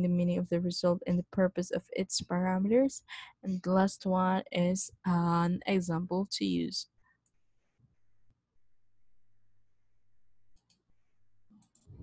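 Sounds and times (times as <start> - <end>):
computer mouse clicks: 10.5 - 10.9, 11.5 - 12.0.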